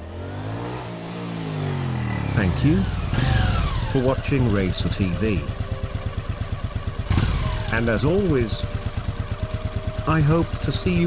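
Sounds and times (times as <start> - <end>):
motorcycle engine approaching: 0.0 - 11.0.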